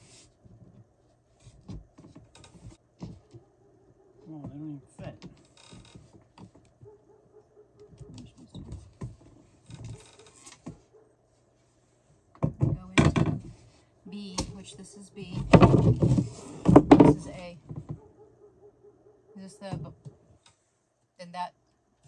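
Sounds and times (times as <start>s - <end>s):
panels knocking on floor: 15.4s - 17.8s.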